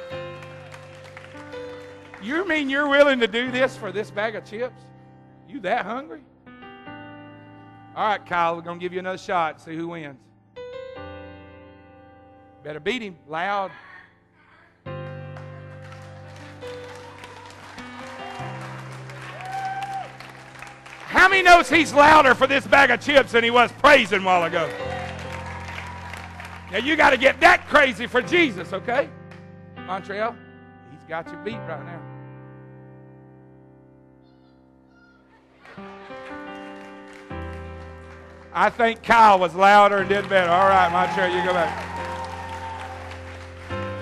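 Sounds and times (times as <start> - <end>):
sustained keyboard chords: 0.0 - 13.5, 20.2 - 34.2, 35.8 - 41.8
audience crowd noise: 16.1 - 28.0, 39.9 - 44.0.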